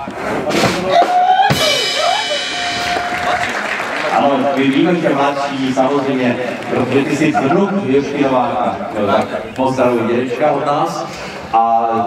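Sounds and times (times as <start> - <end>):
drum and cymbal hit: 0.5 - 3.4.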